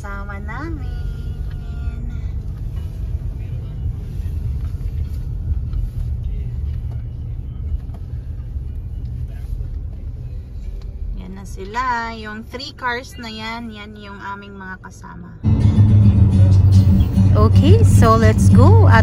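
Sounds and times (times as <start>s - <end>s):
car driving rumble from inside: 0.0s - 19.0s.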